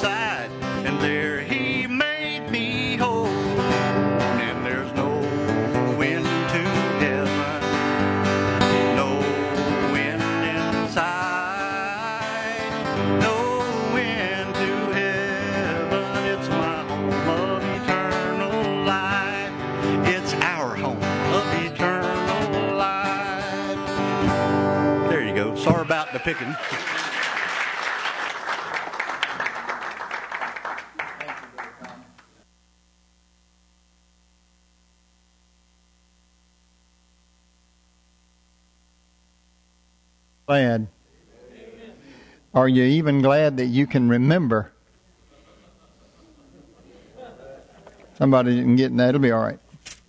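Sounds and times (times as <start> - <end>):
man singing: 0.0 - 24.2
acoustic guitar strummed and picked: 0.0 - 26.4.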